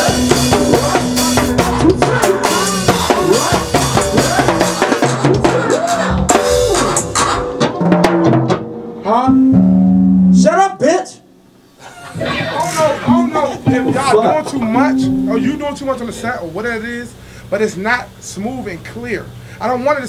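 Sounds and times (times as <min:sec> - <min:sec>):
stick-played drums: 0:00.0 - 0:09.8, 0:12.1 - 0:16.5
live band playing a groove: 0:00.0 - 0:10.4, 0:11.9 - 0:16.7
person's voice over music: 0:13.0 - 0:16.6.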